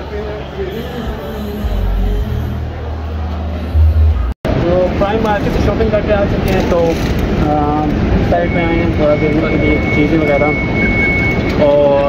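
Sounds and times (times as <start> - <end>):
high-pitched whine: 0.0 - 5.6
city traffic rumble: 0.0 - 12.0.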